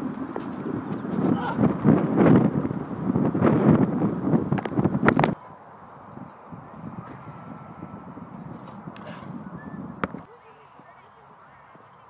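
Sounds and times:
quiet outdoor background: 0.0s - 12.0s
wind buffeting microphone: 0.0s - 12.0s.

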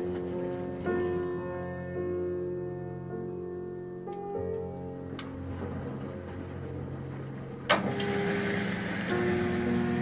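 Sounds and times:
washing machine motor hum: 5.0s - 10.0s.

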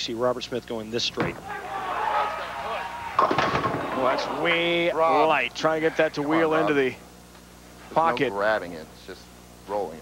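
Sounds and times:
bowling pins clattering: 3.2s - 4.2s.

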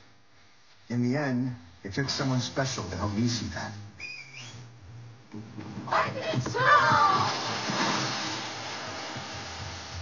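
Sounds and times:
low steady hum: 0.0s - 10.0s
whistle-like chirp: 4.0s - 4.6s.

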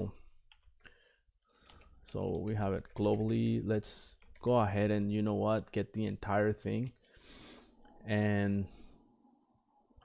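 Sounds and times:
keyboard and mouse clicks: 1.6s - 4.4s
person speaking: 2.1s - 7.0s, 7.9s - 8.8s.

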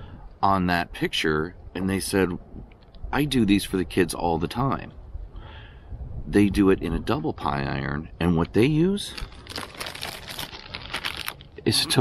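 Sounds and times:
plastic wrapper crinkling: 9.1s - 11.8s.

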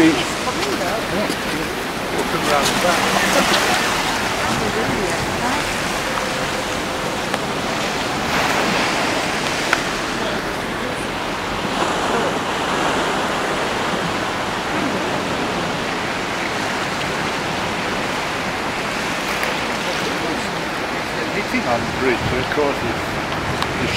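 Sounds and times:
seawater rushing over street: 0.0s - 23.9s.

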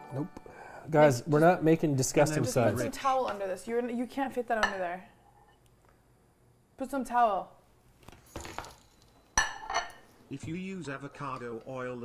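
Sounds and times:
ceramic plate clinking: 4.6s - 4.8s, 9.4s - 10.1s.

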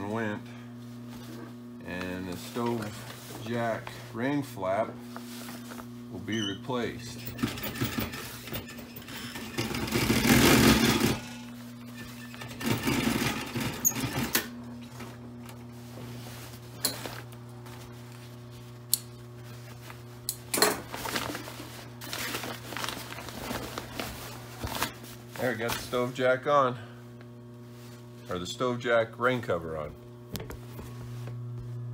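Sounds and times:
sewing machine motor humming: 7.2s - 11.5s, 12.2s - 14.5s.

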